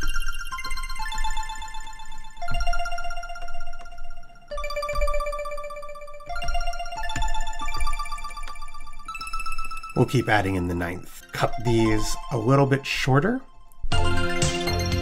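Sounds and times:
arpeggiated plucked synth tone: 0.0s - 15.0s.

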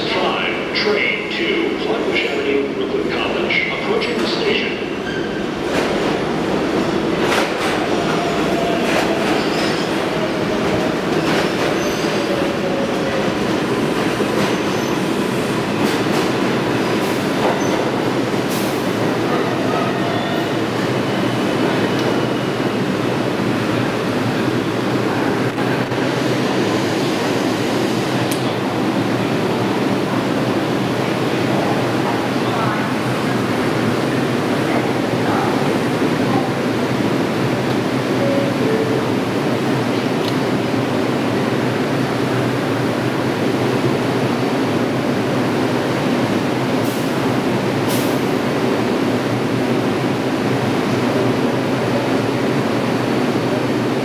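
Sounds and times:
train wheels rumbling on rail: 0.0s - 54.0s.

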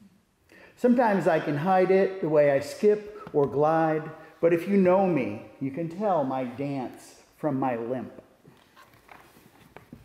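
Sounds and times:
paper rustling: 8.5s - 10.0s.

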